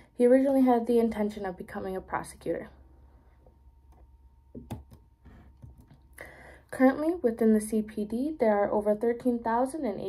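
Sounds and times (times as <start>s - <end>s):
finger tapping laptop key: 4.6s - 5.9s.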